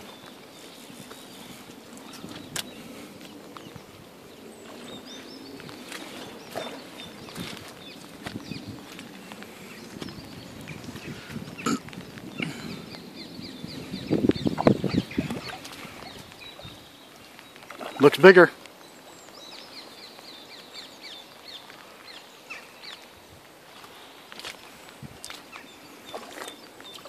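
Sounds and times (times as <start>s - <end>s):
rain pattering on water: 0.0s - 27.0s.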